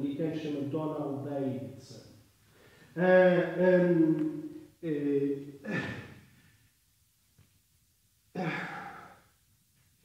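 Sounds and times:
man sighing: 0:05.6 - 0:06.5, 0:08.4 - 0:09.3.

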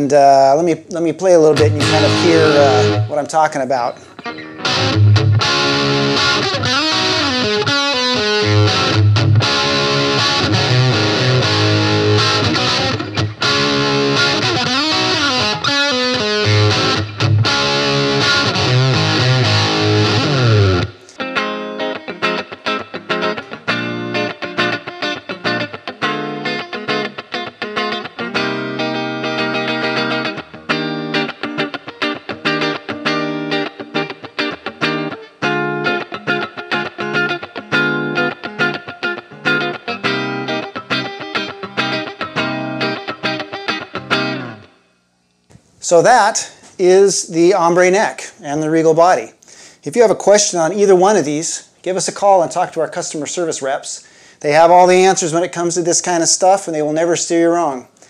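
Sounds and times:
electric guitar through amp: 0:01.4 - 0:44.8.

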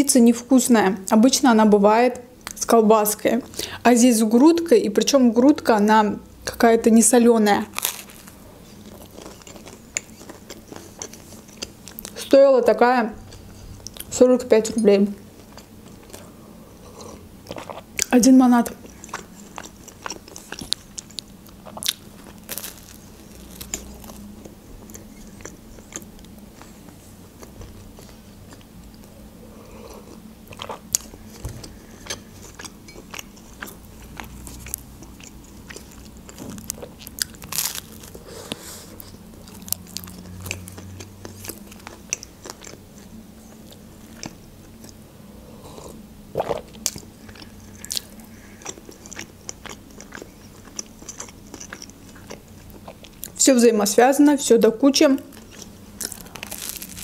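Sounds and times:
chewing soft bread: 0:07.6 - 0:12.3, 0:13.2 - 0:14.2, 0:15.3 - 0:53.4, 0:55.2 - 0:57.0
wet mouth clicks: 0:46.4 - 0:47.1.

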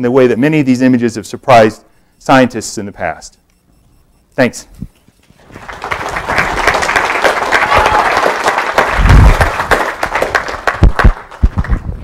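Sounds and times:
audience applauding: 0:05.4 - 0:11.9.

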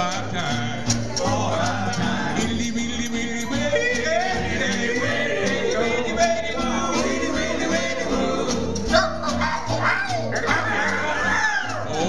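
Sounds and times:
guitar: 0:00.0 - 0:12.0
upright bass line: 0:00.0 - 0:12.0.

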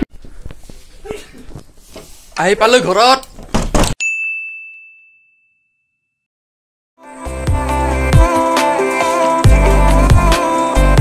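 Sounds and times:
bright ding chime: 0:04.0 - 0:06.0.

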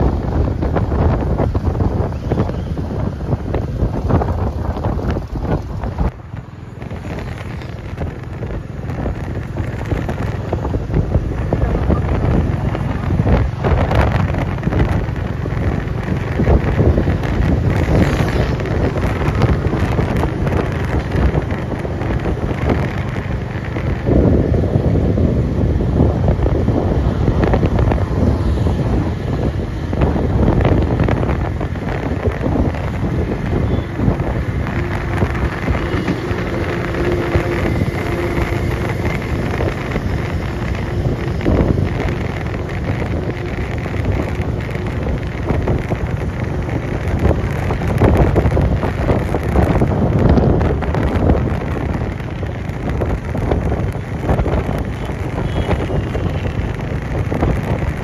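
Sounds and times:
motorcycle engine running: 0:00.0 - 0:58.0
passing traffic rumble: 0:00.0 - 0:58.0
wind rushing over microphone: 0:00.0 - 0:58.0.

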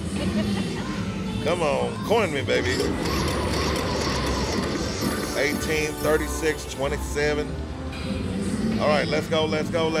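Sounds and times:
game music: 0:02.4 - 0:10.0.

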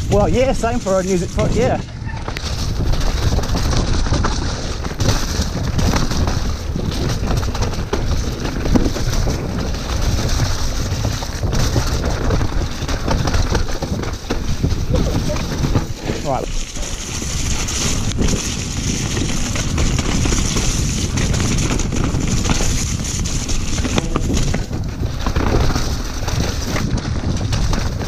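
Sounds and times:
bike rattling: 0:00.0 - 0:28.0
tyres rumbling over mud: 0:00.0 - 0:28.0
wind buffeting microphone: 0:00.0 - 0:28.0.

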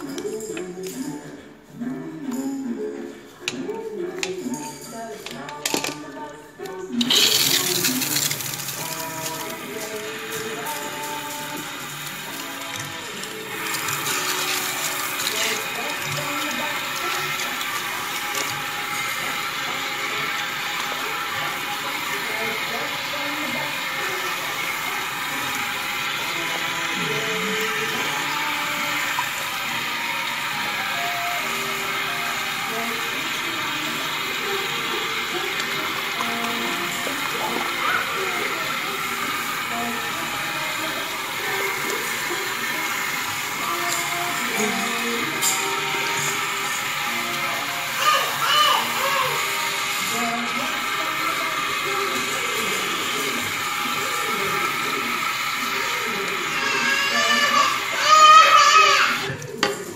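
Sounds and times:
music playing: 0:00.0 - 0:59.9
water spraying onto wet hair: 0:07.0 - 0:59.9.

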